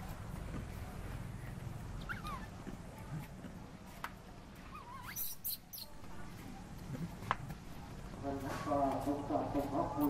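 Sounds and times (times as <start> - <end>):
baby monkey squealing: 2.0 - 2.5, 4.7 - 6.0.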